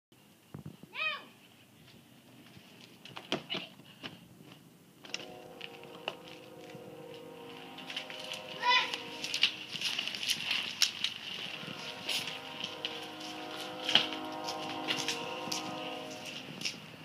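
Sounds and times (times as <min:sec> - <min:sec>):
steady hum: 0:04.9 - 0:17.0
bikes rattling on concrete: 0:07.6 - 0:17.0.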